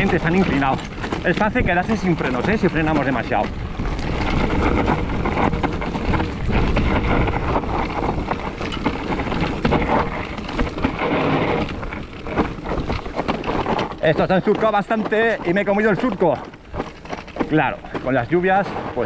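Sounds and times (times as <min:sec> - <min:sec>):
bike clattering: 0:00.0 - 0:19.0
tyres crunching on rock: 0:00.0 - 0:19.0
wind rushing over microphone: 0:00.0 - 0:19.0.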